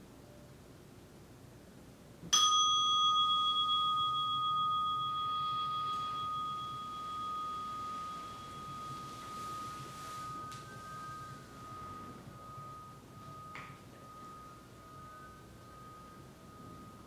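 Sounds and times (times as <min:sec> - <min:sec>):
meditation bell ringing: 0:02.4 - 0:17.0.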